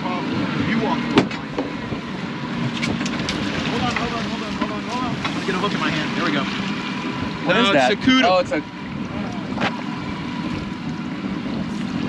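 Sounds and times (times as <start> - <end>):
outboard motors running: 0.0 - 12.0
water washing along hull: 0.0 - 12.0.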